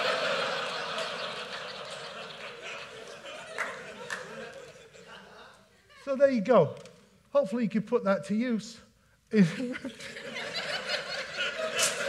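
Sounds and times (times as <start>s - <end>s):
audience laughing: 0.0s - 6.1s, 9.4s - 12.0s.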